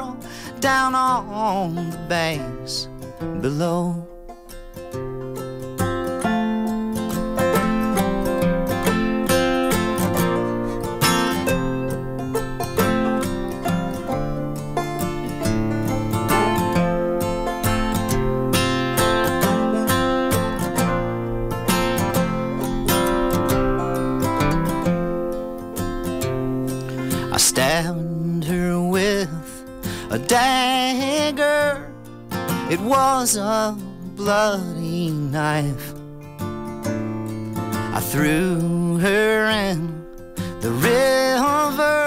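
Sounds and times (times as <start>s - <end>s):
acoustic guitar strumming: 0.0s - 42.0s
banjo picking: 0.0s - 42.0s.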